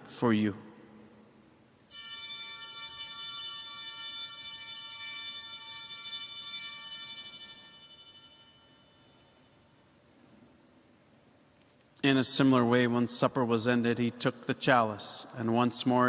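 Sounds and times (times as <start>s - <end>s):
altar bells ringing: 1.8s - 9.9s.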